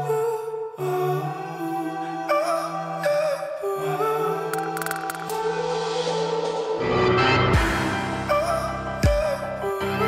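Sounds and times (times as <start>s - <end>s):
low drone: 0.0s - 10.0s
slow ambient music: 0.0s - 10.0s.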